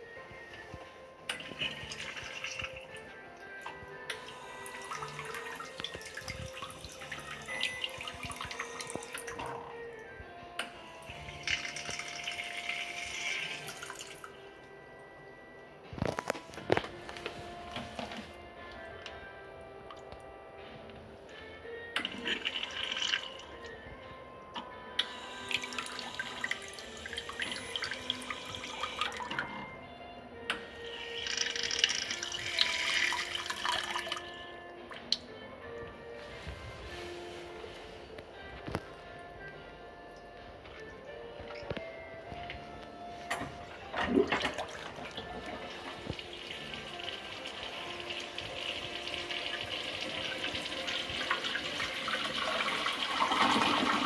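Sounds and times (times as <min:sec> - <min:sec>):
background music: 0:00.0 - 0:54.0
water spraying into toilet bowl: 0:31.1 - 0:34.2.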